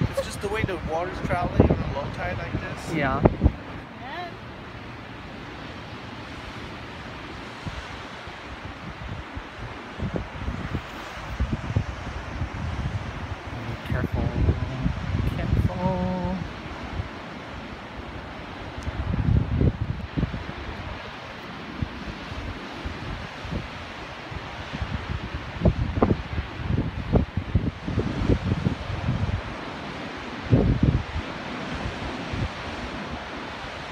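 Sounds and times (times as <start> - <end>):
ocean surf breaking: 0.0 - 33.9
wind buffeting microphone: 0.0 - 33.9.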